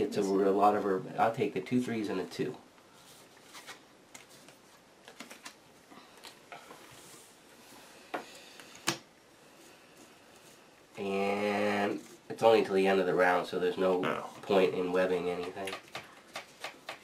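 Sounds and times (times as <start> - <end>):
game cards tapping and rustling: 3.1 - 7.0, 13.8 - 17.0.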